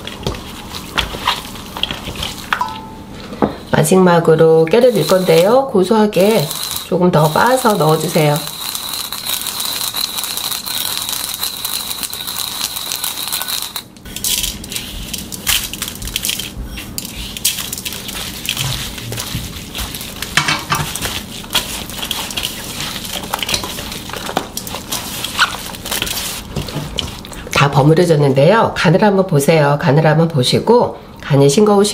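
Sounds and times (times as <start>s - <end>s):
wet rustling in metal bowl: 0.0s - 2.9s, 3.8s - 28.1s
pestle grinding seeds in bowl: 4.7s - 27.7s.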